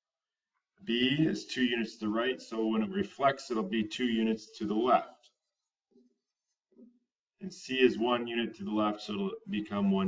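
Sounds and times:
person speaking: 0:00.8 - 0:05.4.

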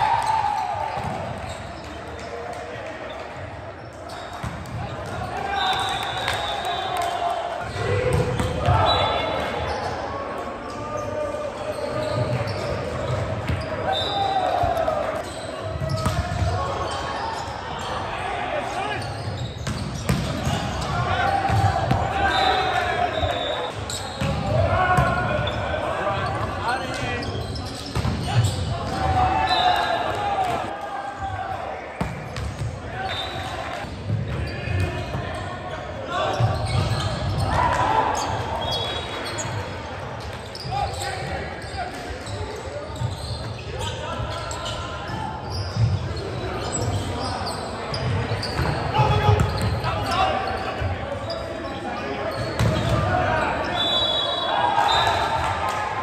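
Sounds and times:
players shouting: 0:04.8 - 0:19.3, 0:20.2 - 0:32.0.

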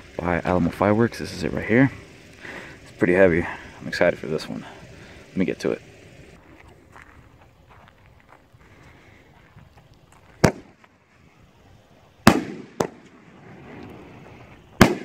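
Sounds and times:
firework shells banging overhead: 0:10.4 - 0:10.8, 0:12.2 - 0:15.0.

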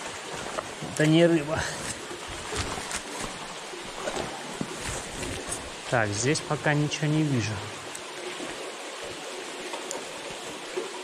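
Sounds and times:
river water running over stones: 0:00.0 - 0:11.0.

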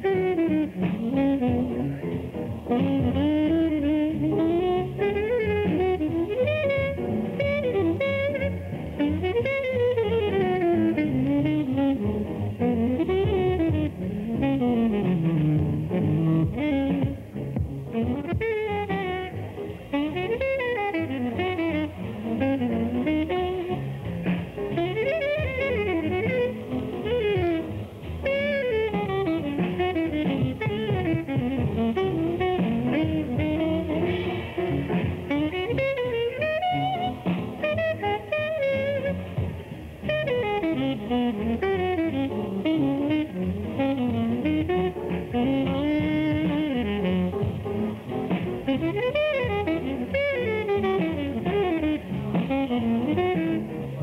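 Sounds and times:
jazz instrumental music: 0:00.0 - 0:54.0.

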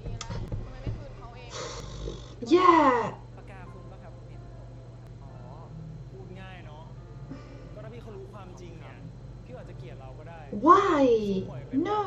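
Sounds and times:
dialogue through speakers: 0:00.0 - 0:12.0
steady low hum: 0:00.0 - 0:12.0.

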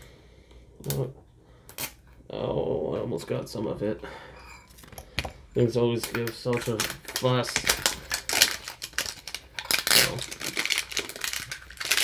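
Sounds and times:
plastic seal peeling crinkle: 0:06.0 - 0:12.0.

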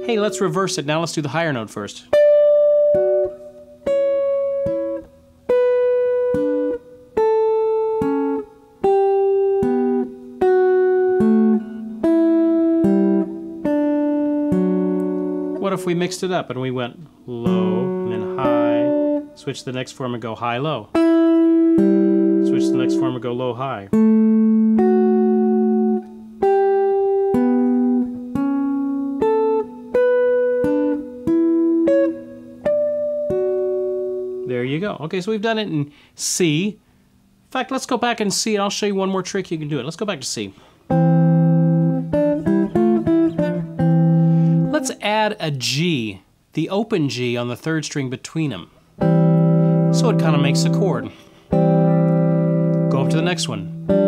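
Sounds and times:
clean electric guitar picking: 0:00.0 - 0:00.8, 0:02.1 - 0:20.0, 0:20.9 - 0:34.5, 0:40.9 - 0:44.9, 0:48.7 - 0:54.0.

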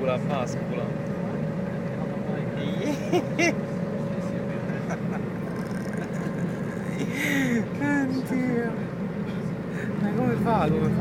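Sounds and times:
bus engine drone: 0:00.0 - 0:11.0
road noise: 0:00.0 - 0:11.0
faint steady hum: 0:01.0 - 0:10.2.

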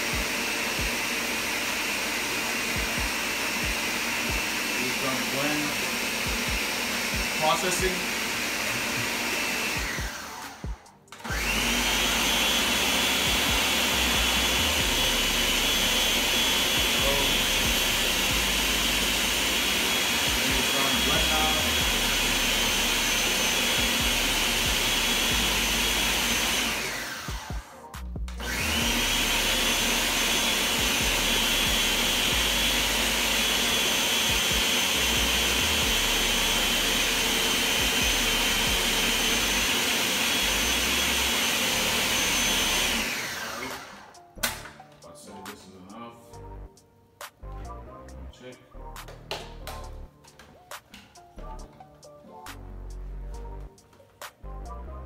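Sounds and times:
blender running: 0:00.0 - 0:44.3.

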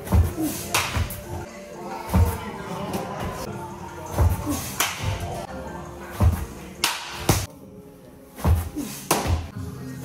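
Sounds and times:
baseball hitting glove crack: 0:06.8 - 0:07.5.

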